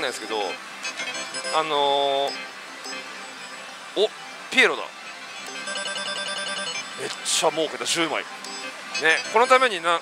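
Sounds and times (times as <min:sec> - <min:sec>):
string of electronic beeps: 0:05.5 - 0:09.8.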